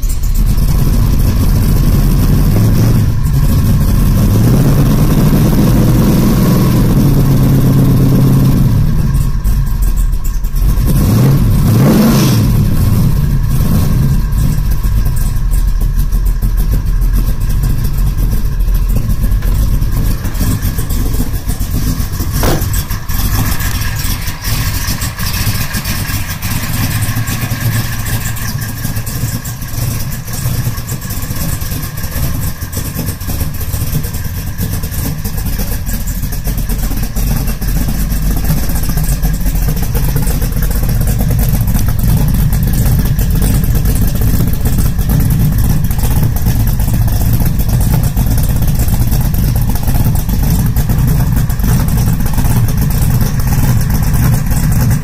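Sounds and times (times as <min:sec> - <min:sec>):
car engine revving and idling: 0:00.0 - 0:55.0.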